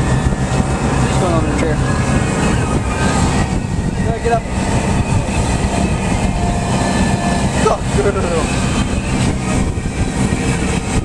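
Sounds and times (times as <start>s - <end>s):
motorboat engine: 0.0s - 11.0s
water rushing past hull: 0.0s - 11.0s
wind buffeting microphone: 0.0s - 11.0s.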